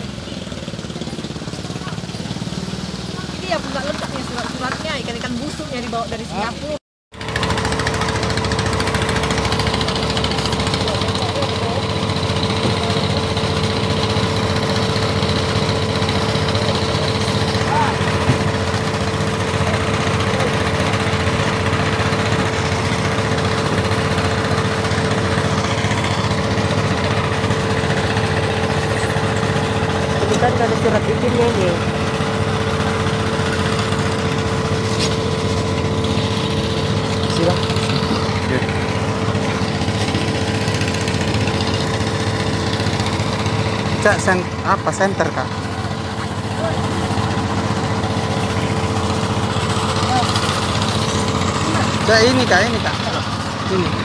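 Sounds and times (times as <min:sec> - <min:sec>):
engine running steadily: 0:00.0 - 0:54.0.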